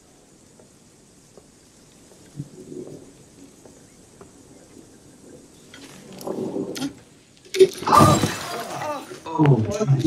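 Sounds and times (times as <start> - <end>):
voices: 2.2 - 10.0
glass smashing: 7.8 - 9.0.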